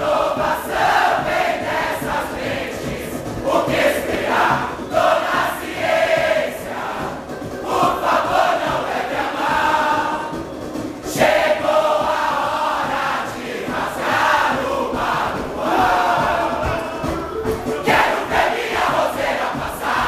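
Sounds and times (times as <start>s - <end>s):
large chorus singing: 0.0s - 20.0s.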